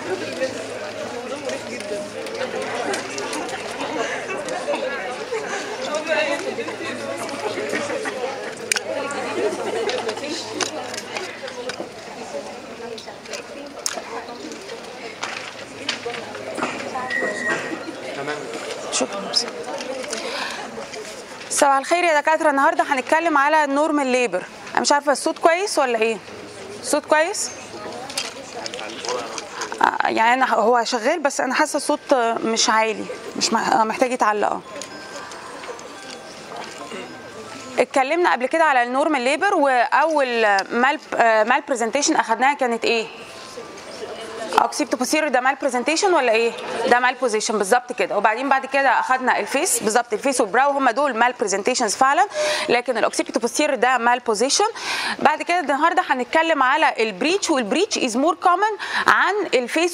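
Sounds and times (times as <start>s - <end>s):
quiet talking: 0.0s - 57.7s
crowd of students chattering: 0.0s - 59.9s.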